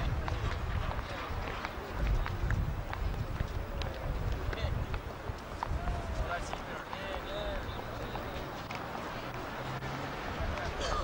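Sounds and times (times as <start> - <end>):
faint voices: 0.0 - 11.0
wind rumble on microphone: 0.0 - 11.0.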